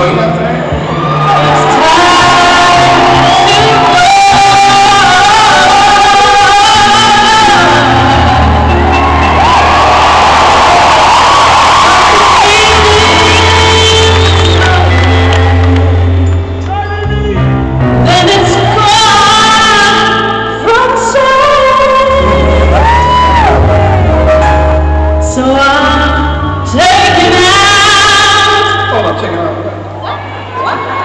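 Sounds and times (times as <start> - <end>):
bass notes: 0.0 - 28.6
woman singing: 1.4 - 8.6, 11.8 - 16.0, 18.0 - 23.7, 24.3 - 28.9
crowd shouting: 7.9 - 13.6.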